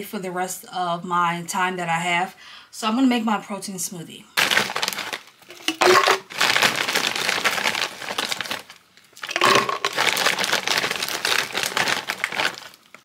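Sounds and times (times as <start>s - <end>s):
plastic bag crinkling: 4.4s - 13.0s.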